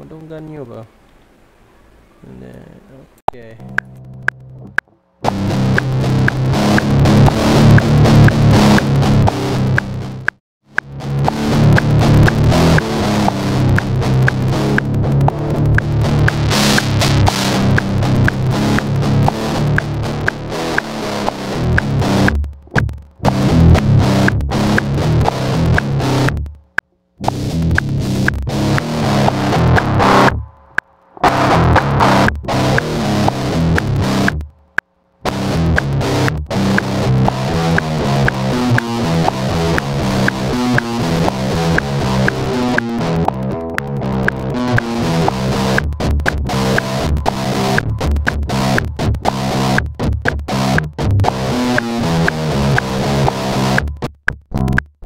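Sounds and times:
distorted electric guitar riff: 3.3 - 55.0.

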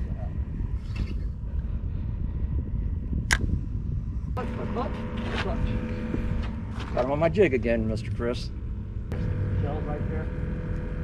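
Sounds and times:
low rumbling on a boat: 0.0 - 11.0.

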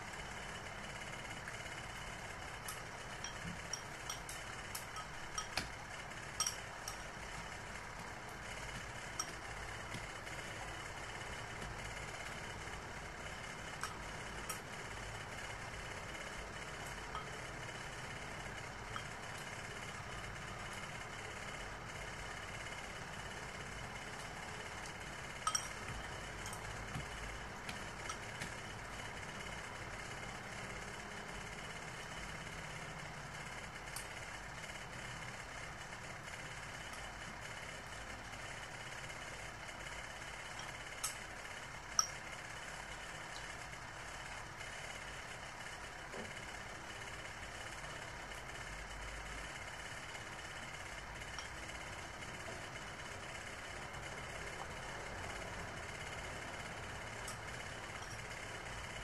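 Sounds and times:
steady background hum: 0.0 - 59.0
spoon clinking ceramic bowl: 6.4 - 7.0, 25.5 - 26.6.

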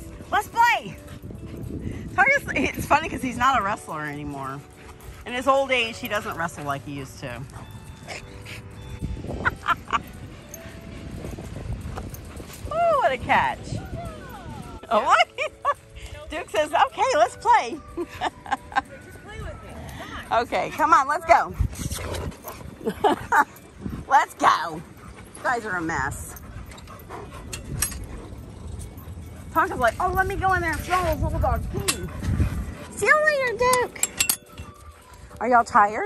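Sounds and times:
metal gate latch clicks and rattles: 33.7 - 34.7.

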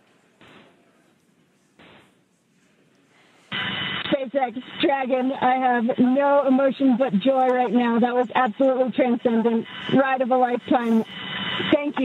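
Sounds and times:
radio static hiss: 0.4 - 0.8, 1.8 - 2.2, 3.4 - 12.0.

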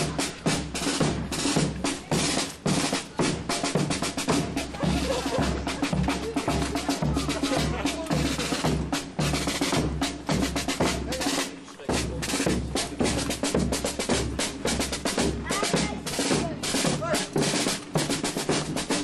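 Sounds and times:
bass drum beat: 0.0 - 19.0
snare drum rolls and rimshots: 0.0 - 19.0.

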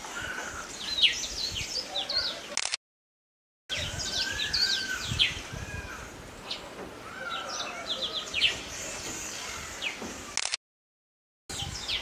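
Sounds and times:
small birds chirping: 0.0 - 2.6, 3.7 - 10.4, 11.5 - 12.0.

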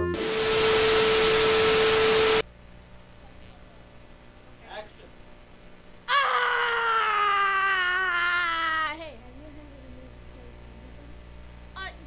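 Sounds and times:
boy wailing: 6.1 - 10.5.

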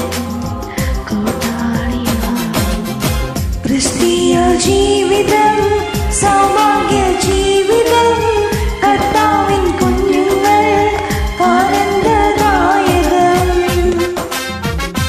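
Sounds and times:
woman singing: 0.0 - 14.3
karaoke backing track with beat: 0.0 - 15.0.

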